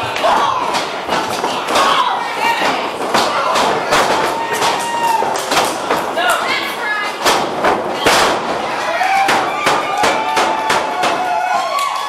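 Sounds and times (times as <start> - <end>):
people shouting: 0.0 - 7.0, 7.9 - 12.0
bodies slamming onto ring canvas: 7.2 - 11.2.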